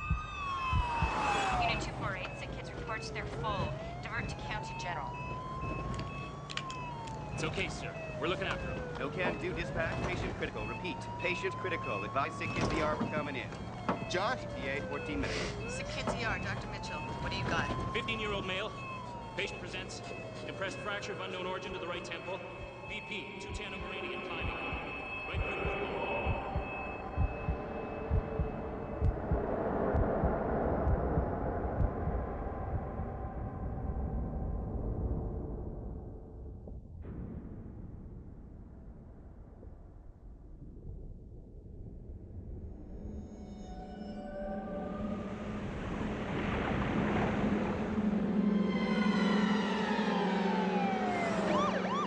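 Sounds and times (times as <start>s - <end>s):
heartbeat double thump: 0.0s - 1.2s, 23.8s - 33.4s
ambulance siren wailing: 0.0s - 29.5s, 43.5s - 52.0s
low vehicle rumble: 23.8s - 37.0s.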